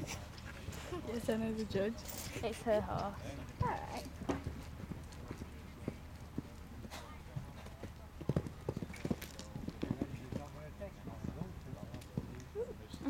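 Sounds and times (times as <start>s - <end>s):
horse hoofbeats on sand: 2.5s - 12.4s.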